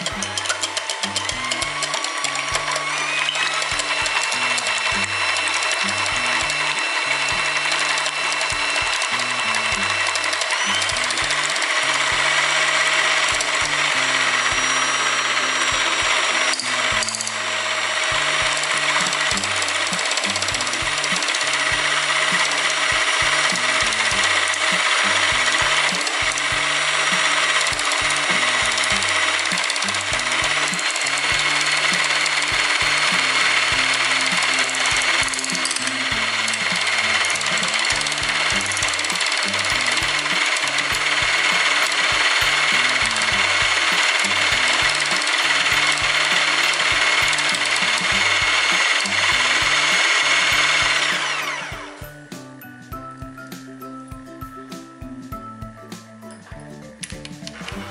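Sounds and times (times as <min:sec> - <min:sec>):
electric hand mixer whipping: 0:00.0 - 0:52.7, 0:57.0 - 0:57.9.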